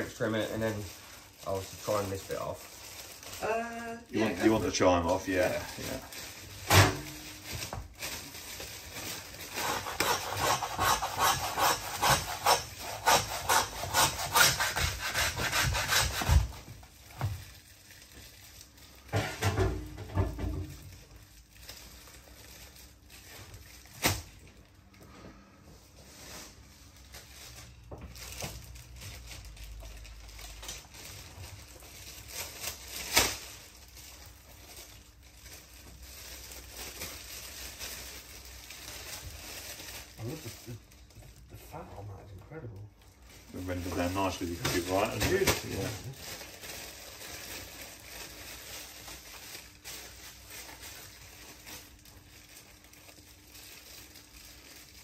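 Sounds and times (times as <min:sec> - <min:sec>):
hand saw cutting bone: 0:09.5 - 0:16.6
knife cutting meat: 0:09.6 - 0:16.5.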